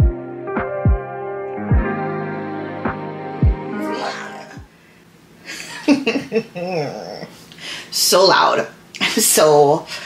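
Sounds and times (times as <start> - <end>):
woman laughing: 5.4 - 7.3.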